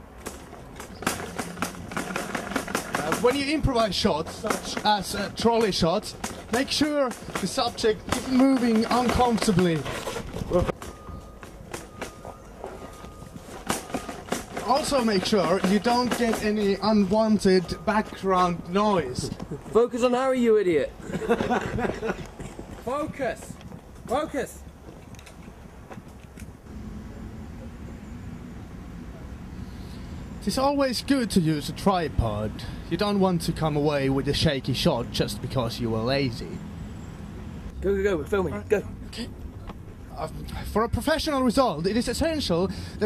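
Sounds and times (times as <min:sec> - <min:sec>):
footsteps on tarmac: 0:00.0 - 0:20.5, 0:21.1 - 0:26.8
knocks and rattles: 0:00.2 - 0:19.7.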